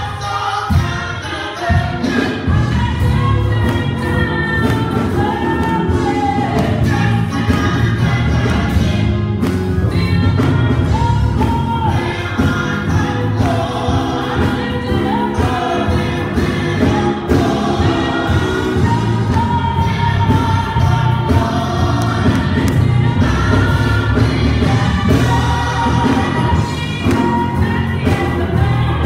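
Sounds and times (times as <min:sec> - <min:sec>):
gospel choir singing: 0:00.0 - 0:29.0
instrumental accompaniment: 0:00.7 - 0:29.0.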